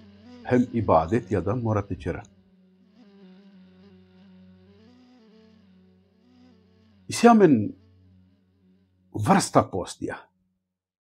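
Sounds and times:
steady low drone: 0.0 - 4.8.

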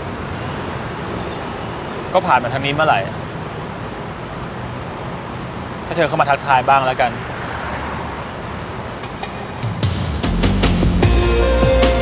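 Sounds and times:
city traffic hum: 0.0 - 12.0.

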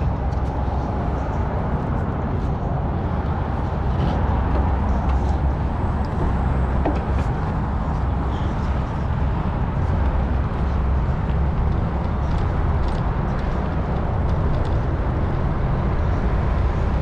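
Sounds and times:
wind rumble on microphone: 0.0 - 17.0.

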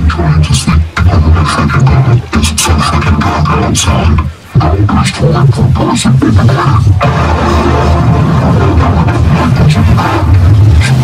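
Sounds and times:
heavy bass hum: 1.0 - 11.0
music and sound effects: 3.0 - 11.0.

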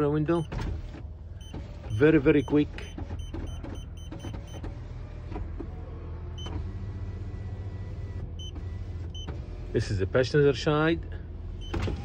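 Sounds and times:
power window motor running: 0.4 - 9.7, 11.5 - 12.0
short high beeps: 1.4 - 4.6.

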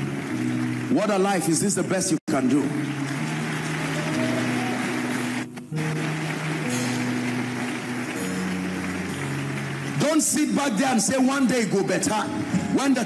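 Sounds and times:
church keyboard chords: 0.0 - 13.0
congregation noise: 0.0 - 13.0.

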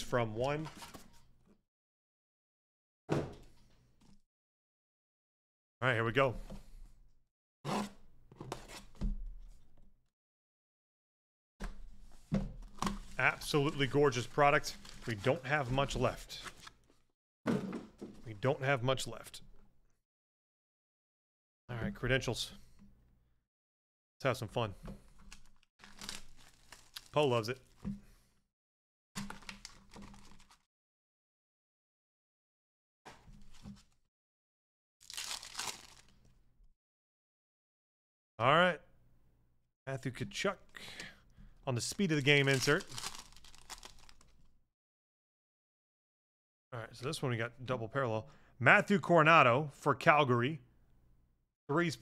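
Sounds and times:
cardboard box and plastic crinkling: 25.4 - 27.8, 29.2 - 30.6, 35.0 - 36.1, 42.3 - 44.3.

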